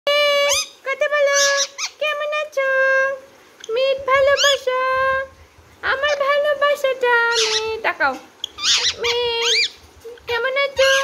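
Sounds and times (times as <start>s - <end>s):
parakeet squeaky calls: 0.4s - 2.0s, 3.6s - 4.7s, 7.3s - 7.8s, 8.4s - 11.0s.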